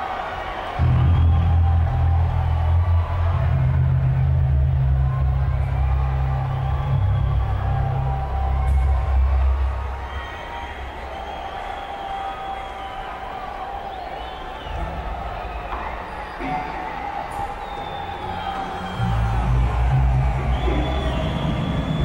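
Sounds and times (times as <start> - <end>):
crowd cheering and whooping: 0.0 - 22.0
deep bass notes through speakers: 0.8 - 10.2, 18.2 - 22.0.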